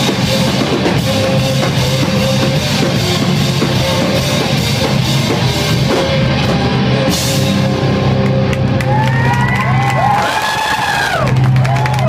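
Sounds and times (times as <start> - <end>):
rock band droning chord: 0.0 - 9.8
crowd cheering: 7.8 - 12.0.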